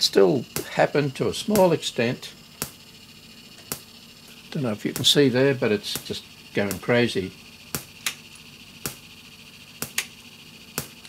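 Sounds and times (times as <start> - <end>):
sharp static ticks: 0.0 - 11.0.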